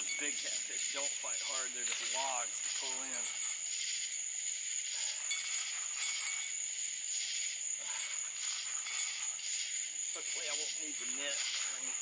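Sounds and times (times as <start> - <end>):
high-pitched insect whine: 0.0 - 12.0
shrill pulsing insect call: 0.0 - 12.0.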